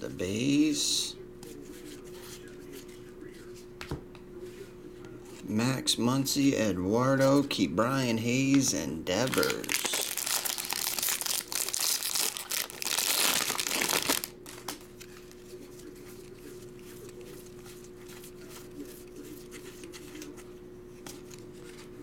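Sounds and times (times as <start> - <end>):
foil wrapper crinkling and tearing: 9.2 - 15.3.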